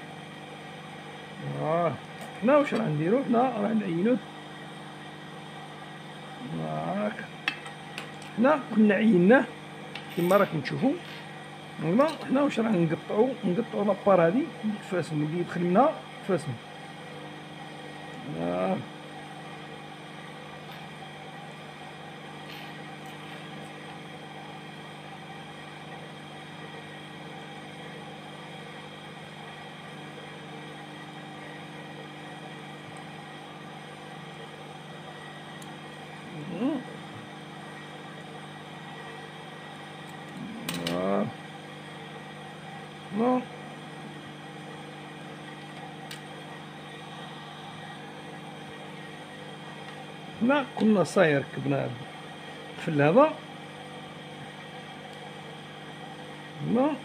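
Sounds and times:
sewing machine motor hum: 0:00.0 - 0:57.0.

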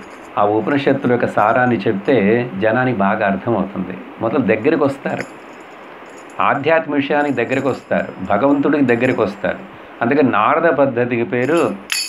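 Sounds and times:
metal jingles ringing: 0:00.0 - 0:01.8, 0:05.0 - 0:09.7, 0:11.4 - 0:12.0
man's voice: 0:00.4 - 0:05.3, 0:06.4 - 0:11.8.

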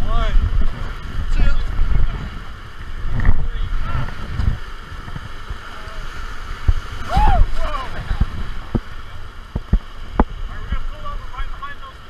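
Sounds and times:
wind buffeting microphone: 0:00.0 - 0:11.6
whitewater rushing and splashing: 0:00.0 - 0:12.0
person yelling: 0:07.0 - 0:08.0.

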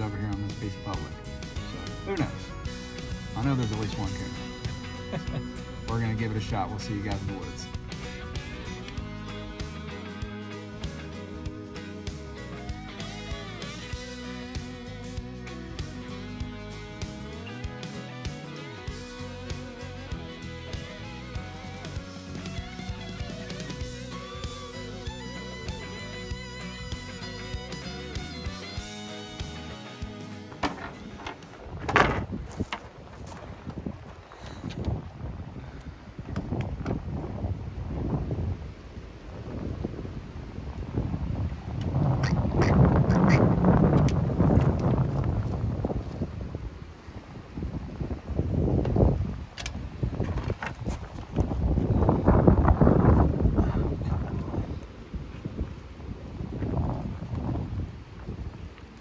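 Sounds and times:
guitar music: 0:00.0 - 0:31.8
wind buffeting microphone: 0:30.9 - 0:59.0.

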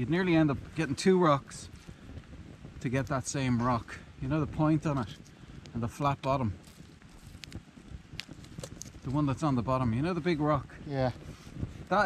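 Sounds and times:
campfire crackling: 0:00.0 - 0:12.0
fire popping: 0:00.0 - 0:12.0.

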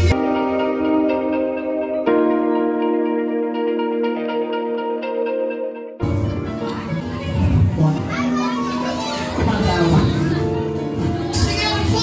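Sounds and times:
background music: 0:00.0 - 0:12.0
children calling out: 0:06.3 - 0:09.4.

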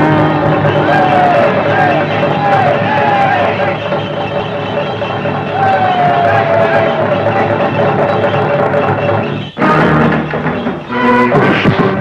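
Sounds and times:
background film music: 0:00.0 - 0:12.0
dense noisy commotion: 0:00.0 - 0:12.0.

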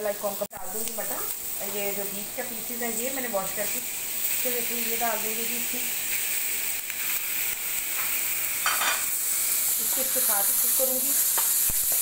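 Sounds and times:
meat and onions sizzling in oil: 0:00.0 - 0:12.0.

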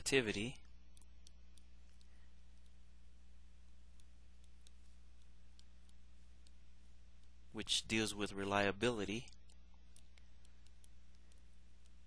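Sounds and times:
steady low hum: 0:00.0 - 0:12.0
stylus tapping on screen: 0:00.6 - 0:02.8, 0:03.7 - 0:07.4, 0:09.2 - 0:12.0.

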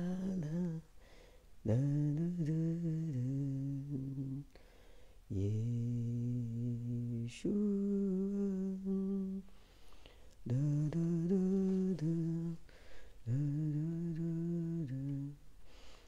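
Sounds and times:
man humming: 0:13.2 - 0:15.4.

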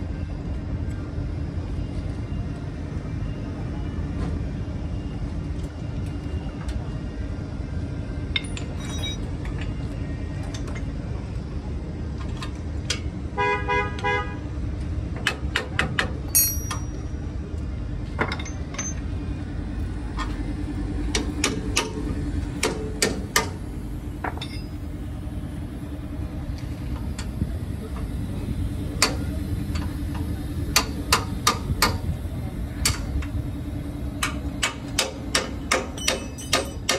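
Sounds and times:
faint constant hum: 0:00.0 - 0:36.9
low mechanical rumble: 0:00.0 - 0:36.9.

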